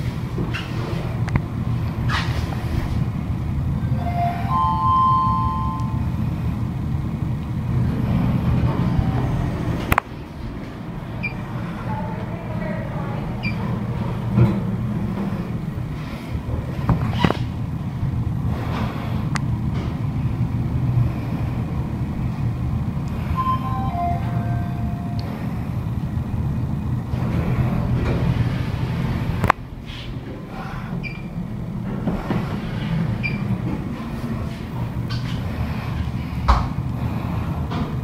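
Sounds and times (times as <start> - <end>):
lift humming: 0.0 - 38.0.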